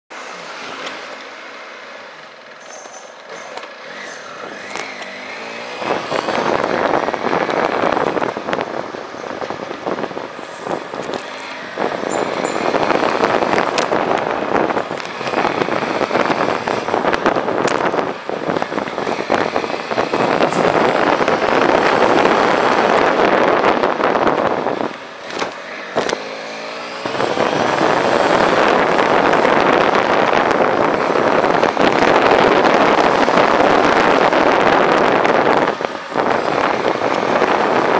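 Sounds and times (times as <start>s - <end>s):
motorcycle engine: 0.3s - 37.9s
wind rushing on microphone: 3.8s - 37.9s.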